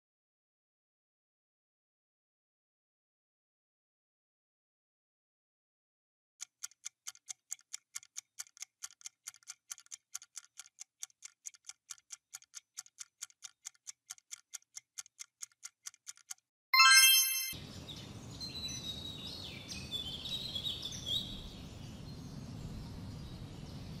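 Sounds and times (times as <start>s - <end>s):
countdown timer ticking: 15.2s - 17.6s
high chirps: 16.8s - 17.6s.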